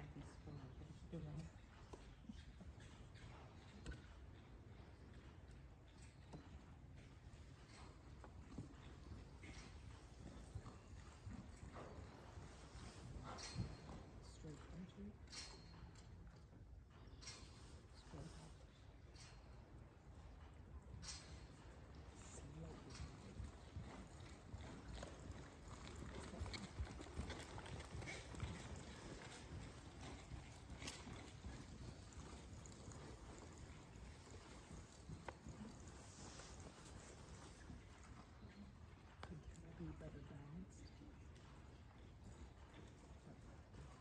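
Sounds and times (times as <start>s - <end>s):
hoofbeats on soft dirt: 0.0s - 44.0s.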